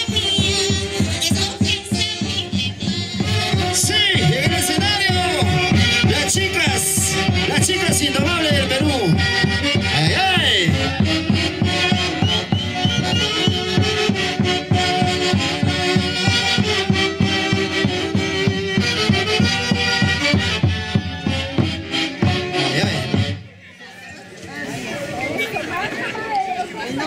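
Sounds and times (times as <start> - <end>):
steady drum beat: 0.0 - 23.4
saxophone-led band playing festive tune: 0.0 - 27.0.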